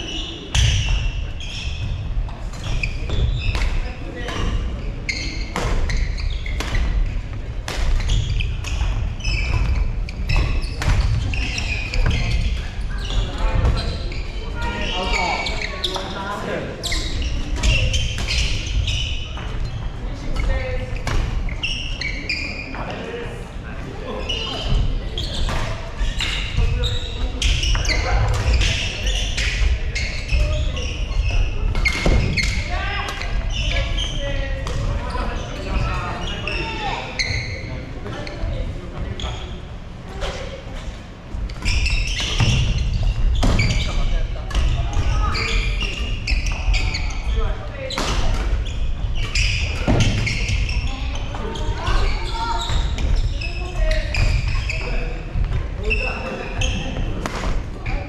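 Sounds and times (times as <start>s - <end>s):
murmur of voices: 0.0s - 58.0s.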